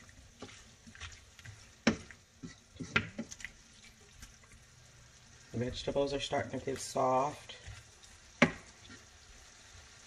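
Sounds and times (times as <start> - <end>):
wooden spoon scraping a pan: 0.0 - 4.6, 6.4 - 9.2
faint sizzle: 0.0 - 10.0.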